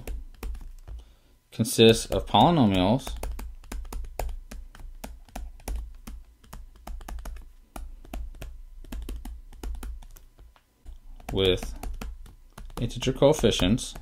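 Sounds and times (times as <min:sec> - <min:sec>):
stylus tapping on tablet screen: 0:00.0 - 0:01.1, 0:01.8 - 0:14.0.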